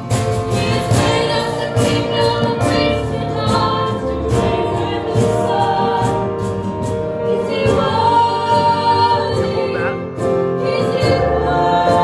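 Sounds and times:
acoustic guitar: 0.0s - 12.0s
women singing together: 0.4s - 12.0s.

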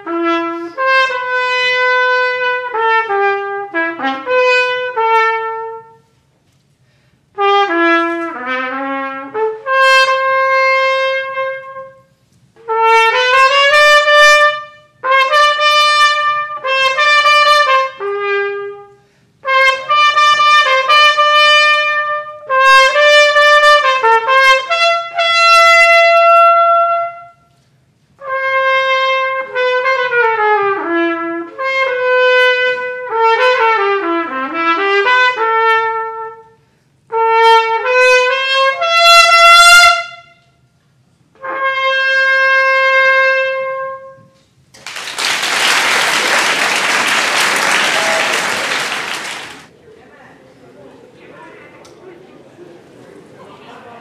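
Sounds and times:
solo trumpet melody: 0.0s - 6.2s, 7.4s - 27.6s, 28.2s - 40.6s, 41.3s - 44.5s
audience applause: 44.8s - 49.7s.

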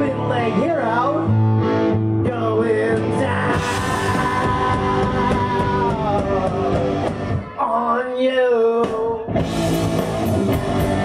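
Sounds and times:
man singing: 0.0s - 1.4s, 2.2s - 9.5s
amplified guitars playing chords: 0.0s - 11.0s.

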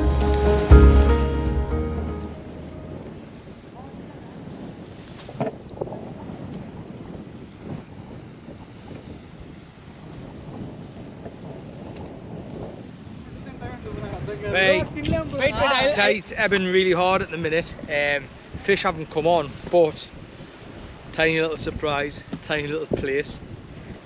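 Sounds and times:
choppy sea washing: 2.3s - 24.0s
wind noise on microphone: 2.3s - 24.0s.

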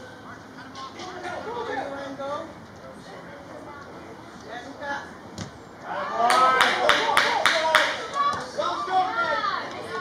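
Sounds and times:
people shouting and calling out: 5.8s - 10.0s.

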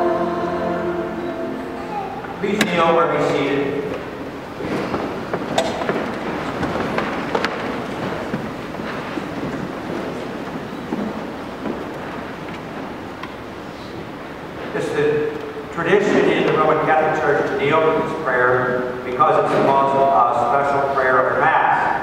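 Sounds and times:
shuffling and rustling: 3.9s - 14.8s.

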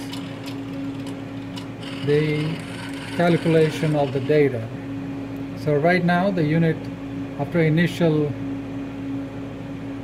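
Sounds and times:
instrument humming steadily: 0.0s - 10.0s.

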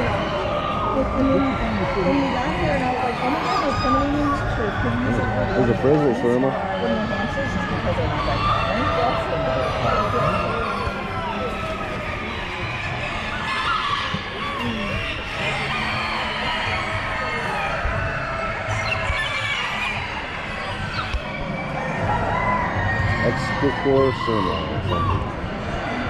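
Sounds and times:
murmur of people talking: 0.0s - 26.0s
chickens crowing and clucking: 7.9s - 26.0s.

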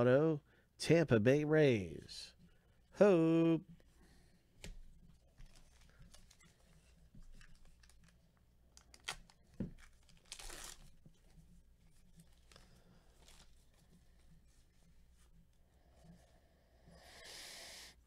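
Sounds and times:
wrapper rustling: 5.2s - 14.3s
card pack wrapper tearing: 7.6s - 10.9s.

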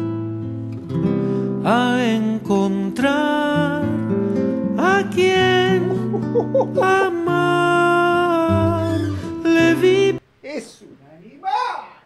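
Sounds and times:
fingerpicked acoustic guitar: 0.0s - 10.2s
man singing: 1.6s - 10.3s.

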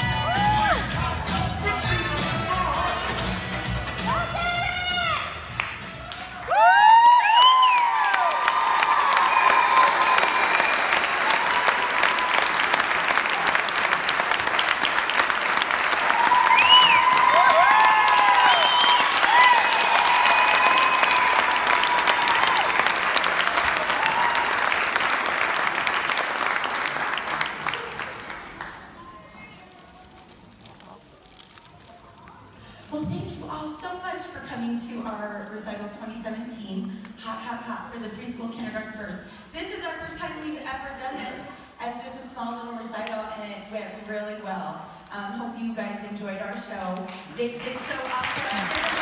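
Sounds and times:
voices whooping: 0.0s - 0.9s, 6.1s - 12.6s, 16.1s - 22.9s
audience applauding: 0.0s - 32.1s, 47.1s - 49.0s.

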